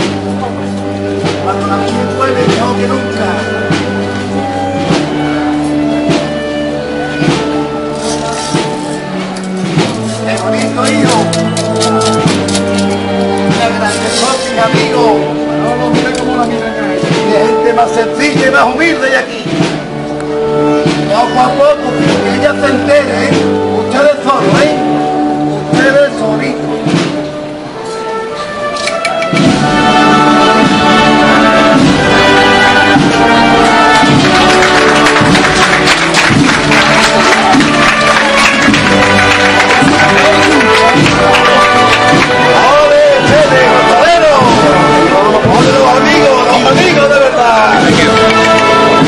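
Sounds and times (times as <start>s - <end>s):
drum strokes: 0.0s - 21.3s, 25.6s - 27.9s, 28.8s - 49.0s
brass band playing march: 0.0s - 49.0s
held wind chords: 0.0s - 49.0s.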